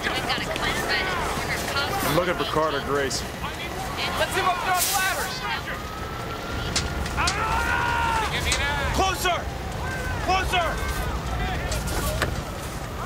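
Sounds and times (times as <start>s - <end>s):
people shouting long calls: 3.8s - 11.9s.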